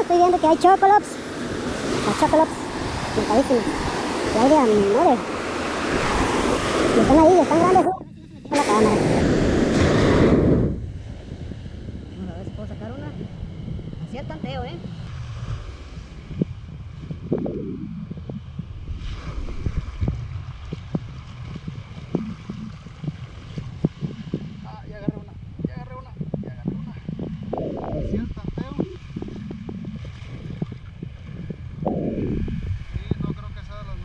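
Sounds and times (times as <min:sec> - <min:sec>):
surf in shallows: 0:00.0 - 0:34.0
wind buffeting microphone: 0:00.0 - 0:34.0
voice fragments: 0:06.9 - 0:09.3.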